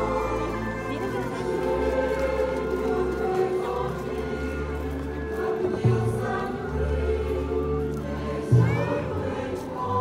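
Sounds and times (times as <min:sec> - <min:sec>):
choir singing a hymn: 0:00.0 - 0:10.0.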